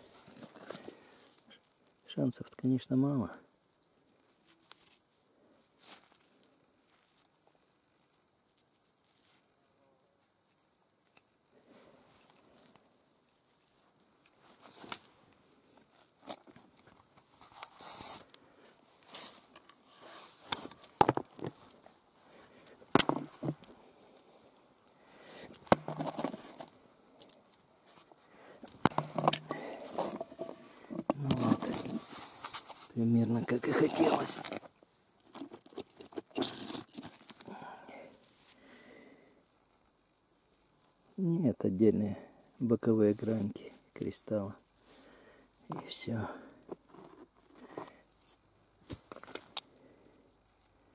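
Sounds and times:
rocks knocking on stone: 21.0 - 21.6, 22.9 - 23.6
rock rubble crunching: 28.7 - 32.1, 33.5 - 34.7, 35.3 - 37.5.

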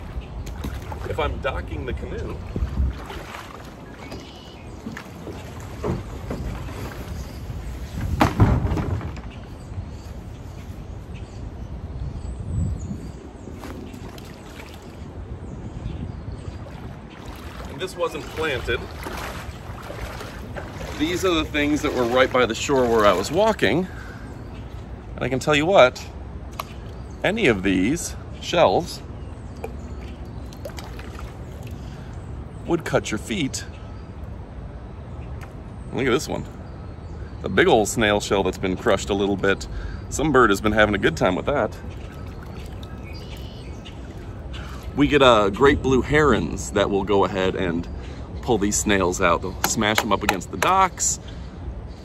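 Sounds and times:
footsteps splashing in shallow water: 0.0 - 8.4, 13.5 - 15.3, 16.3 - 25.0, 29.6 - 32.0, 41.9 - 45.0
birds chirping: 0.0 - 52.0
low outdoor background noise: 0.0 - 52.0.

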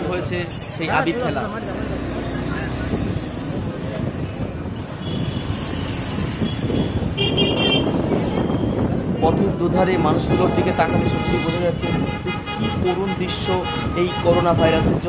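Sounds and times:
road traffic: 0.0 - 15.0
vehicle horn tooting: 6.4 - 9.3, 9.9 - 14.8.

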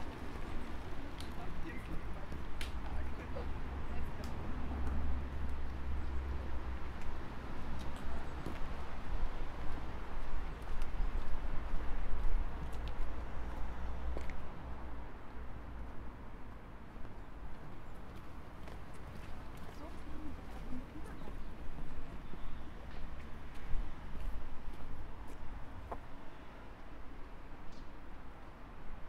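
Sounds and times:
footsteps on cobblestones: 0.0 - 14.6, 15.8 - 26.2.

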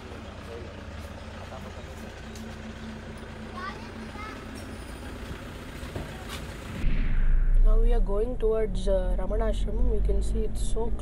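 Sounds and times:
street traffic rumble: 0.0 - 6.9, 7.6 - 11.0
loud low rumble: 6.7 - 11.0.

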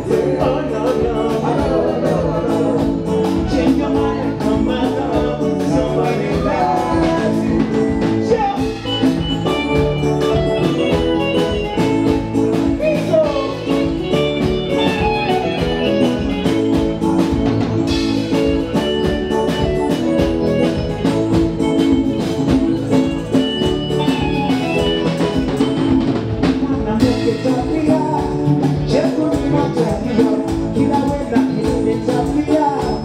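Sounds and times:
live band playing pop groove: 0.0 - 33.0.

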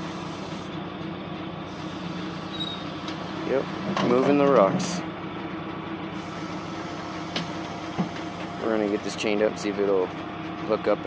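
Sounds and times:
diesel engine running: 0.0 - 11.0.

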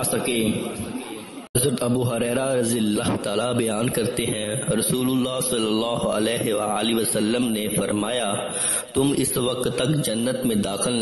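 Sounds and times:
man reading aloud: 1.6 - 11.0.

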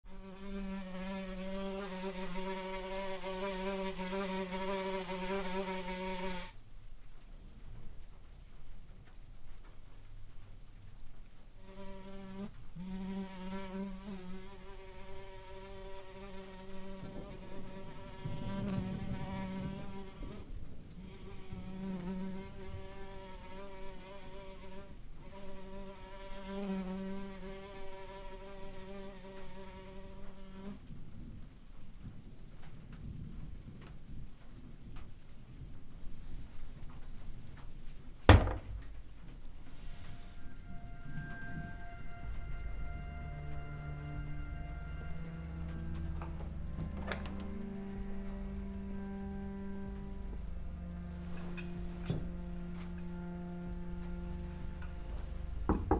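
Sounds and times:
fly buzzing: 0.1 - 6.6, 11.6 - 30.8, 39.7 - 55.9.

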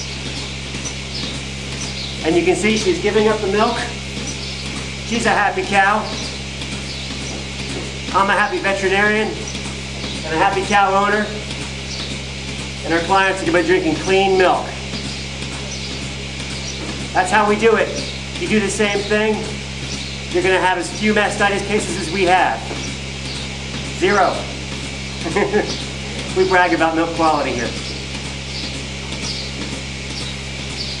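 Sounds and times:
hissing background: 0.0 - 15.9, 16.6 - 28.6
milking machine humming: 0.0 - 31.0.

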